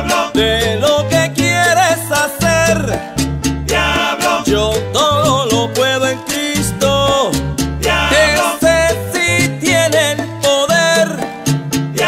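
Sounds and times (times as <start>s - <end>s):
salsa music: 0.0s - 12.0s.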